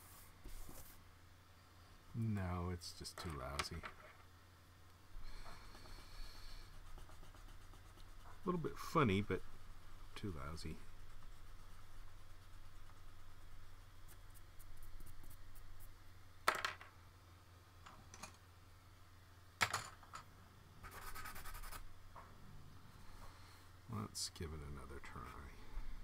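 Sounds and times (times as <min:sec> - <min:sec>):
low steady hum: 0:00.0 - 0:26.0
pencil rasp: 0:06.6 - 0:08.6
pencil scratching on paper: 0:06.6 - 0:09.0, 0:10.6 - 0:15.9, 0:20.8 - 0:21.8.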